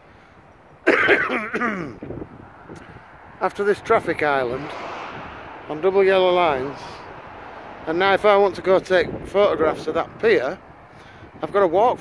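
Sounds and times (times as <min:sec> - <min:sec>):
man clearing his throat: 0:00.8 - 0:02.0.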